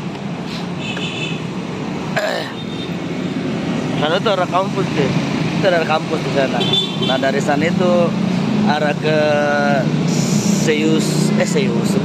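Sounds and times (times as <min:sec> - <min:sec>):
motorcycle and car engines passing: 0:01.2 - 0:12.0.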